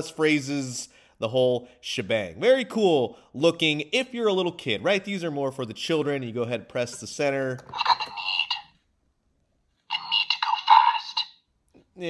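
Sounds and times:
tinny recorded voice from toy speaker: 7.6 - 8.8, 9.9 - 11.4.

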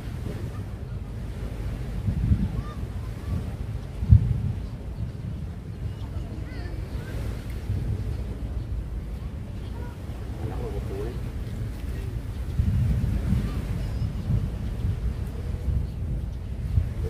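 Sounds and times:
wind rumbling on microphone: 0.0 - 17.0.

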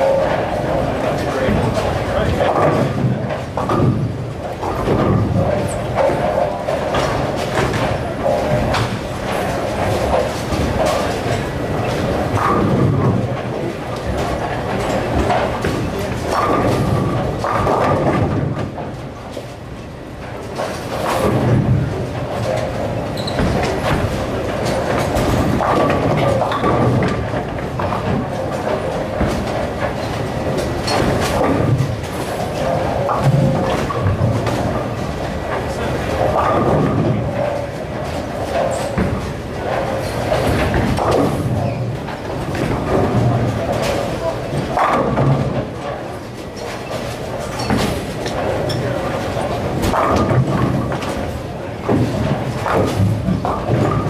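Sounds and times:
bowling balls rolling: 0.0 - 54.0.

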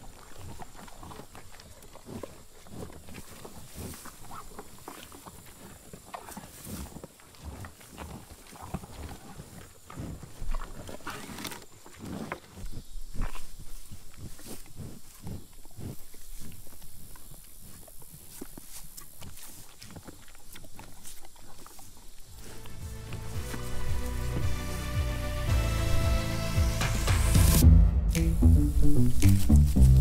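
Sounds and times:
bison chewing and crunching: 0.0 - 26.0.

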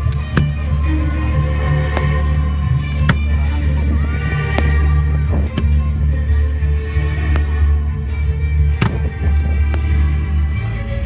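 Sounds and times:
music with deep bass: 0.0 - 11.0.

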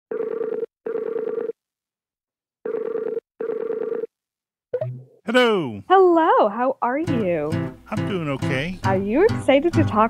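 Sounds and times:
telephone ringback tone: 0.1 - 1.6, 2.7 - 4.1.

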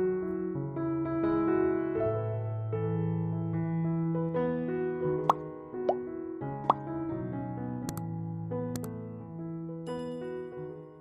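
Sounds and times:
soft electric piano music: 0.0 - 11.0.

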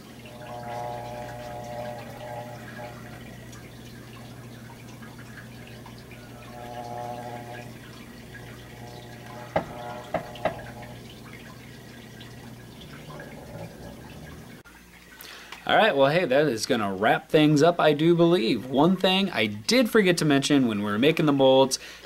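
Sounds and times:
low hum: 0.0 - 14.6.

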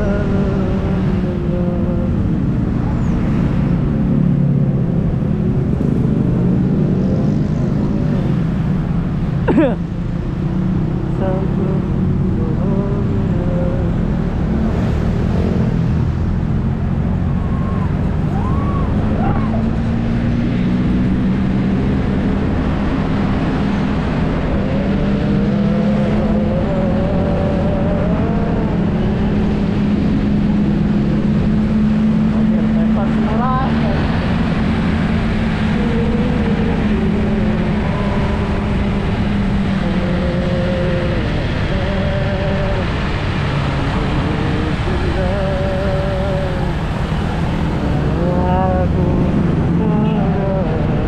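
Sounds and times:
road and wind noise: 0.0 - 51.0.

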